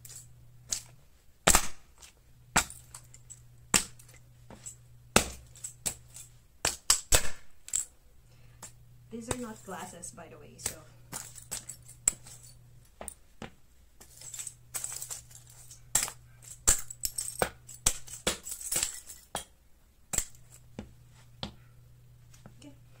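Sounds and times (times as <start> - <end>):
plastic cracking under stomping shoes: 4.6 - 7.6.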